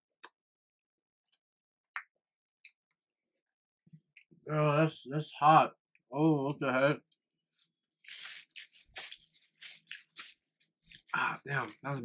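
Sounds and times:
paper napkin rustling and tearing: 8.0 - 11.1.

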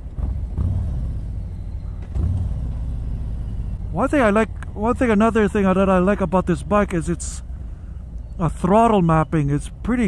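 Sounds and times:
motorcycle engine rumbling: 0.0 - 10.0.

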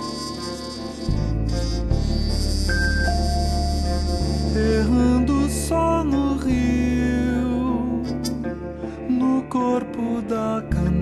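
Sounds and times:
sliding instrumental melody: 0.0 - 11.0
low bass notes: 1.1 - 8.8.

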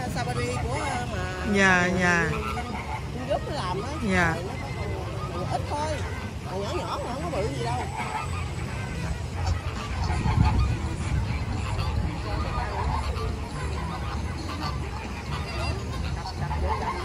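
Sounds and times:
flamingos honking: 0.0 - 17.0.

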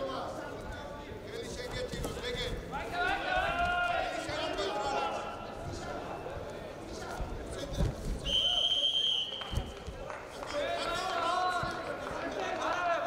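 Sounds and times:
referee's whistle: 8.2 - 9.7.

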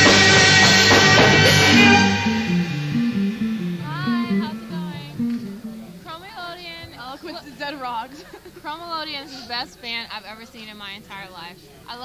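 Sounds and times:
plucked low bass notes: 0.0 - 6.1
high sliding melodic line: 0.0 - 6.4.

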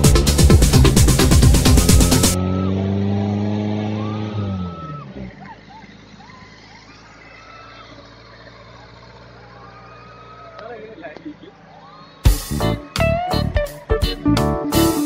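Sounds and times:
electronic dance music: 0.0 - 2.4, 12.2 - 15.0
vehicle engine winding down: 0.0 - 13.6.

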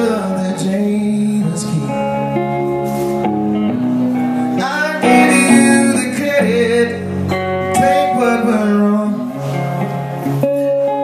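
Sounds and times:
electric guitar chords: 0.0 - 11.0
keyboard playing held chords: 0.0 - 11.0.

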